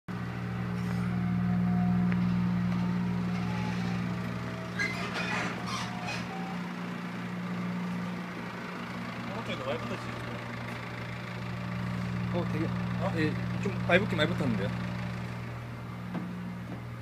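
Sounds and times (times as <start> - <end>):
low mechanical hum: 0.1 - 17.0.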